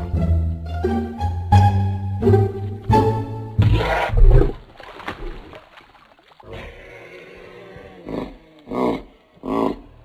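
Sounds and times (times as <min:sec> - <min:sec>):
lion grunting: 0:06.4 - 0:10.0.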